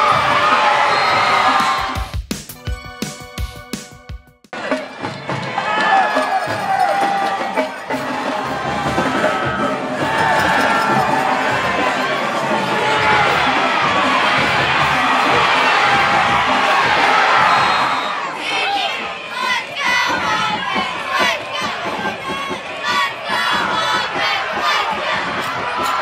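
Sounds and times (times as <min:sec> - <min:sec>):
separate shouts and yells: 0:00.0 - 0:02.1, 0:04.6 - 0:26.0
stadium crowd cheering: 0:00.0 - 0:02.1, 0:04.5 - 0:26.0.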